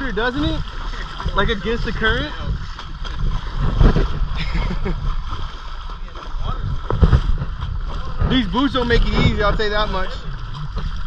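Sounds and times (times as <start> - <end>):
steady low rumble: 0.0 - 11.0
water sloshing around legs: 0.0 - 11.0.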